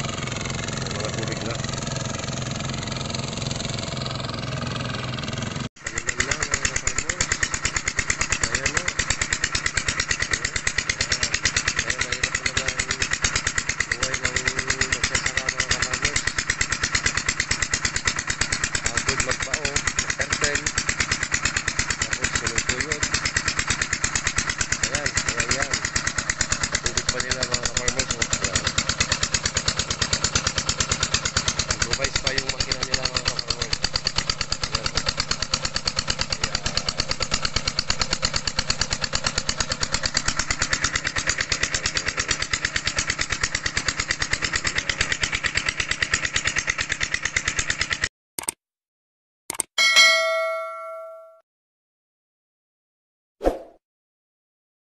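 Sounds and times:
small engine running steadily: 0.0 - 48.6, 49.5 - 51.3
water rushing from pump: 5.8 - 48.1.

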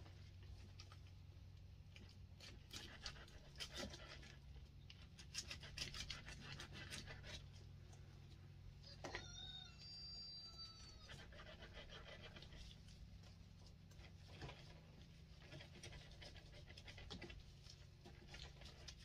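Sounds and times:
steady low hum: 0.0 - 9.0, 9.7 - 19.0
knife slicing fruit: 5.1 - 7.6.

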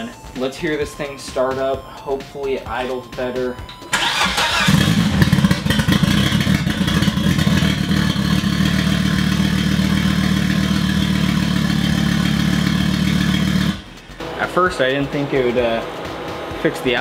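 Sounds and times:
car engine idling: 3.9 - 17.0.

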